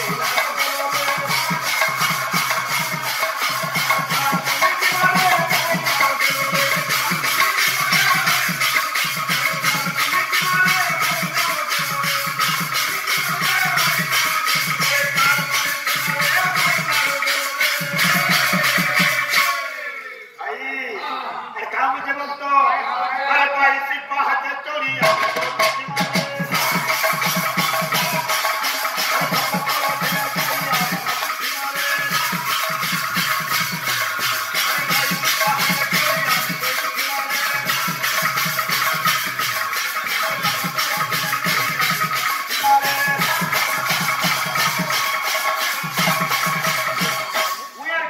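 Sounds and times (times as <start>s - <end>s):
fast jingling beat: 0.0s - 20.0s, 25.0s - 47.8s.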